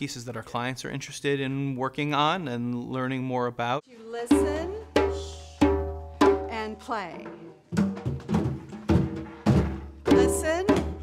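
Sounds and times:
hand drum strokes: 4.3 - 11.0.

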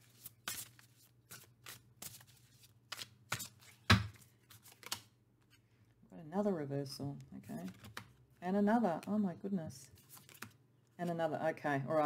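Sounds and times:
cards being shuffled: 0.0 - 5.6, 7.4 - 8.2, 10.0 - 10.6.

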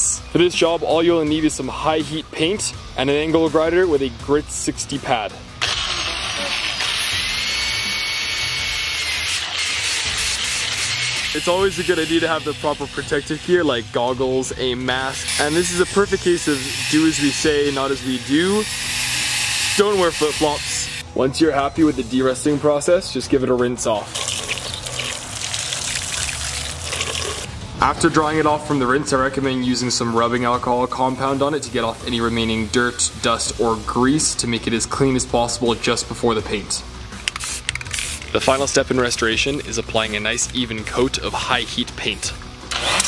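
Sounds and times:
angle grinder sanding metal: 5.6 - 21.0
hose water splashing on metal: 24.1 - 27.5.

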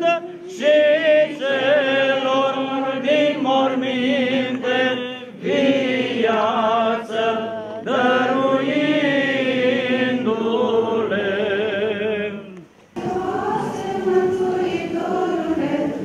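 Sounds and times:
choir singing liturgical chant: 0.0 - 16.0.

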